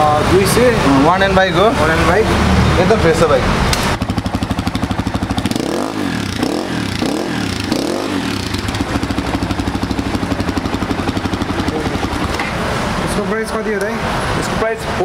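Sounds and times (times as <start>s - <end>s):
dirt bike engine revving: 3.8s - 13.2s.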